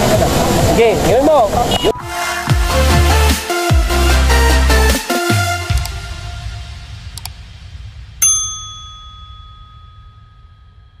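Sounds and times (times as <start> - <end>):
bright bell ding: 8.2 - 11.0.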